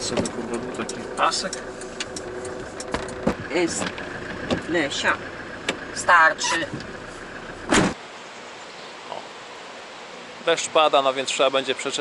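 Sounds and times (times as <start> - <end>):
car door thud: 2.9 - 4.7, 7.7 - 8.0.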